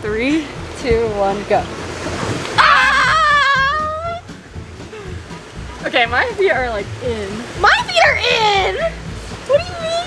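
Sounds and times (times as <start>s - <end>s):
woman's high wavering cry: 2.6s - 4.3s.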